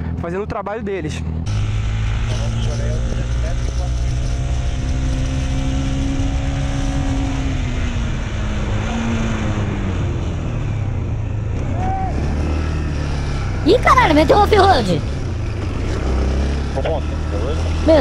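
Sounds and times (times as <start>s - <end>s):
motorcycle engine revving: 0.0s - 14.3s, 15.0s - 18.0s.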